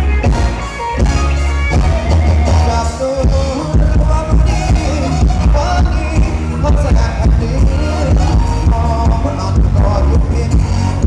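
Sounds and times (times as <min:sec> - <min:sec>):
gliding melody line: 0:00.0 - 0:11.0
heavy pulsing bass: 0:00.0 - 0:11.0
live band playing dance music: 0:00.0 - 0:11.0.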